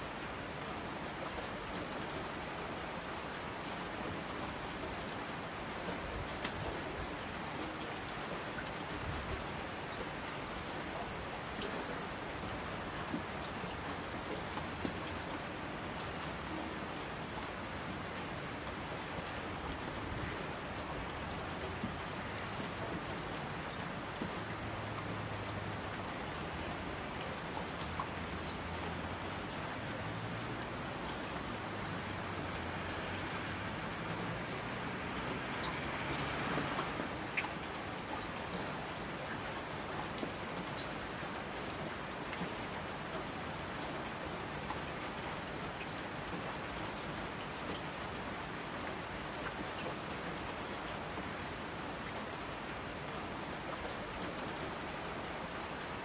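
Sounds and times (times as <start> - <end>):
rain drops pattering: 0.0 - 56.0.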